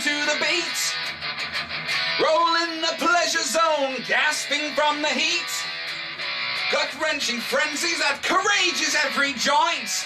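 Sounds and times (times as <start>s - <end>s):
man singing: 0.0s - 1.1s, 2.1s - 5.8s, 6.7s - 10.0s
electric guitar riff: 0.0s - 10.0s.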